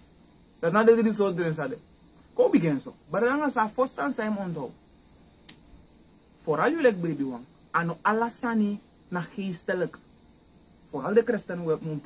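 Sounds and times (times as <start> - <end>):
crickets trilling: 0.0 - 12.0
man speaking: 0.6 - 1.8, 2.4 - 4.8, 6.4 - 10.0, 10.9 - 12.0.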